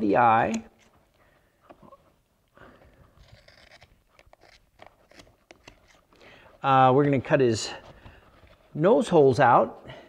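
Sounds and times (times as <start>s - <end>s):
scissors snipping rubber: 3.2s - 6.1s.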